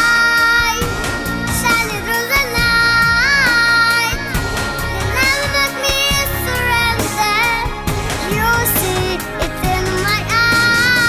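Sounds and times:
girl singing into microphone: 0:00.0 - 0:00.9, 0:01.6 - 0:11.0
backing music with a beat: 0:00.0 - 0:11.0.

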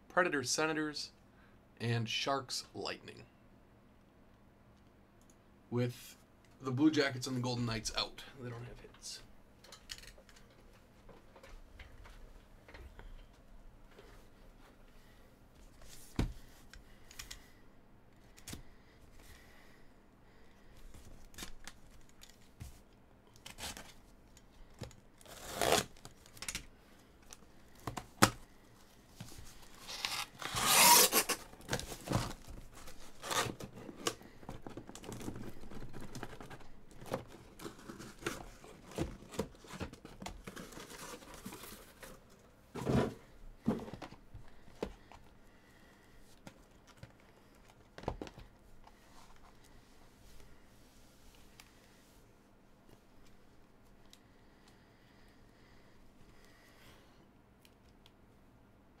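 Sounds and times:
cardboard and tape ripping: 0:25.2 - 0:26.4, 0:29.8 - 0:34.2
utility knife slitting cardboard: 0:29.8 - 0:32.2.

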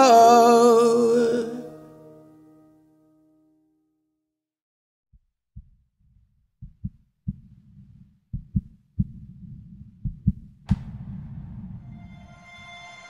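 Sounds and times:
music: 0:00.0 - 0:04.2, 0:10.8 - 0:13.0
heartbeat thumps: 0:05.6 - 0:12.0
low rumble: 0:08.4 - 0:13.0
sharp hit: 0:10.7 - 0:13.0.

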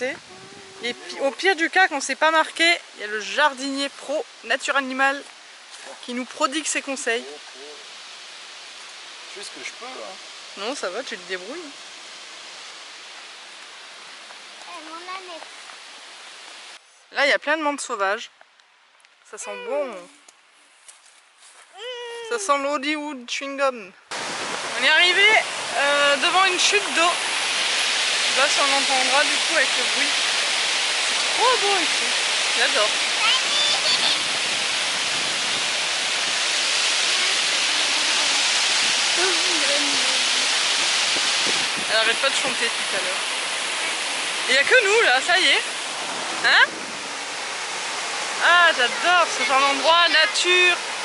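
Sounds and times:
rushing water: 0:00.0 - 0:18.1, 0:19.2 - 0:20.4, 0:21.4 - 0:51.0.

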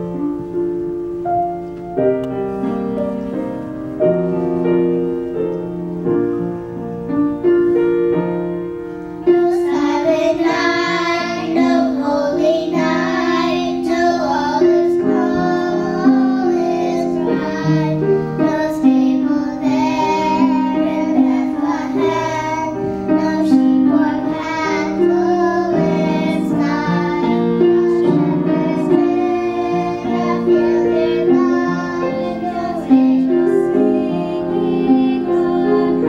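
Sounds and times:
piano chords: 0:00.0 - 0:36.0
children singing: 0:09.3 - 0:36.0.

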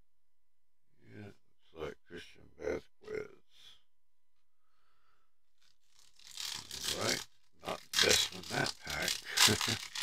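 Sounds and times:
foil wrapper crinkling and tearing: 0:05.8 - 0:10.0.

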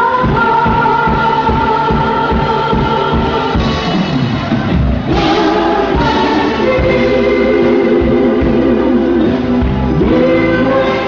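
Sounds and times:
live backing band: 0:00.0 - 0:11.0
vocal group singing harmonies: 0:00.0 - 0:11.0.

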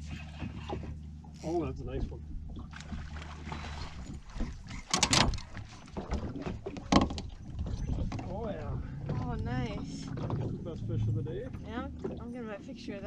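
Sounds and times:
water splashing against boat: 0:00.0 - 0:13.0
fish thrashing in water: 0:02.4 - 0:10.8.

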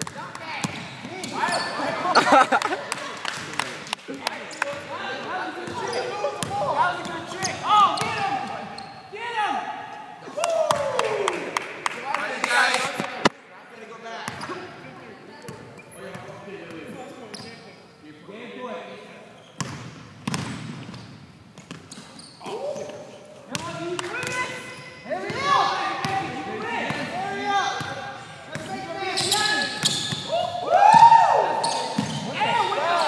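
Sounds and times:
players' voices and calls: 0:00.0 - 0:21.0, 0:21.6 - 0:33.0
basketball bouncing on court: 0:19.6 - 0:22.0.

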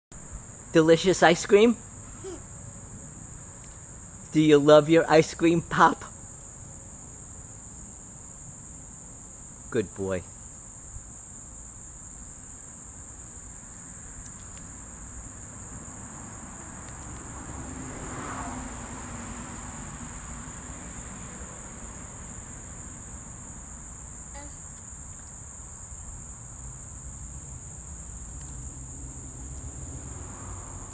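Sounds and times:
insects chirring: 0:00.2 - 0:30.9.

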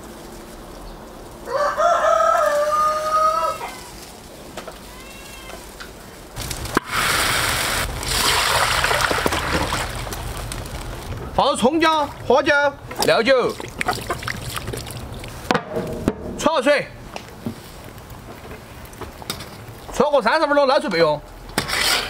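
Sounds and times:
straw burning in a stove: 0:00.0 - 0:22.0
rooster crowing: 0:01.4 - 0:04.0.

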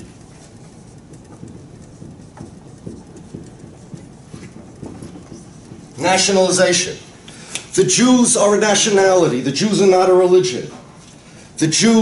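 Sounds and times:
marker writing on whiteboard: 0:00.0 - 0:10.1.

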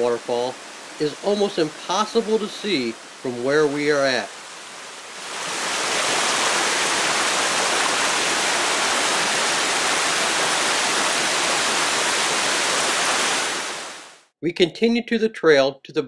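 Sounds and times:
waterfall rushing: 0:00.0 - 0:14.2.

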